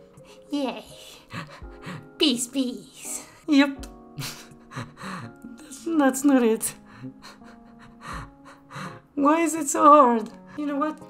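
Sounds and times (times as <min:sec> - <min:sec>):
quiet background music: 0:00.0 - 0:11.0
woman breathing and laughing: 0:04.1 - 0:05.6, 0:06.7 - 0:09.0.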